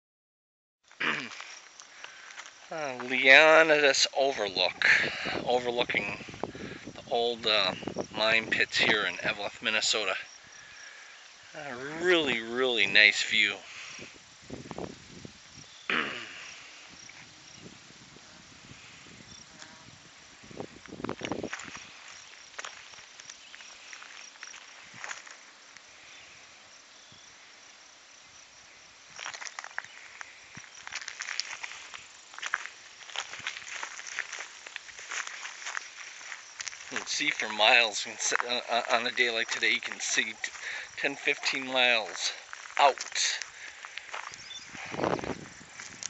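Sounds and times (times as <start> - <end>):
footsteps on dirt path: 1.0 - 12.5, 20.4 - 25.9, 29.1 - 46.0
high insect chirping: 1.2 - 46.0.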